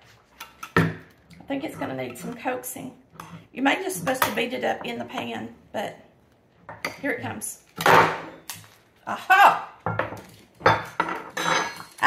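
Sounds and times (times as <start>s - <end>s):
utensils clattering on wood: 10.2s - 12.0s.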